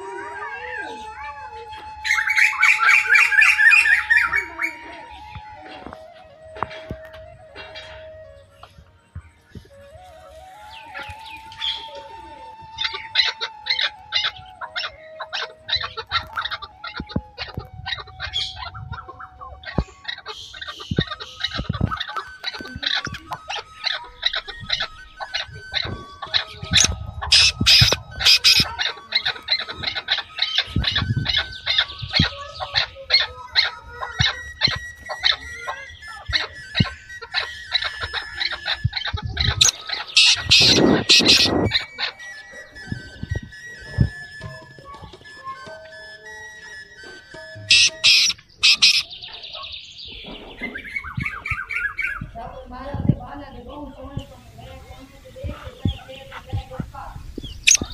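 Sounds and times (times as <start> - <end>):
birds chirping: 0.0 - 57.9.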